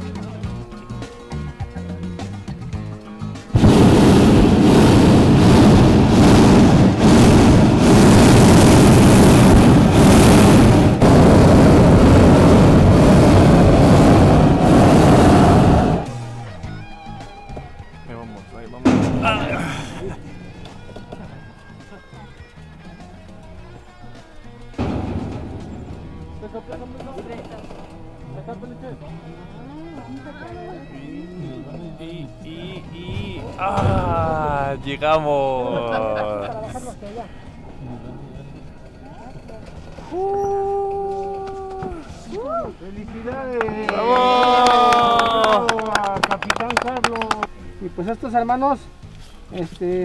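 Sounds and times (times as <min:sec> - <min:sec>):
background music: 0:00.0 - 0:50.0
propane burner roaring: 0:03.5 - 0:16.8, 0:24.4 - 0:29.5.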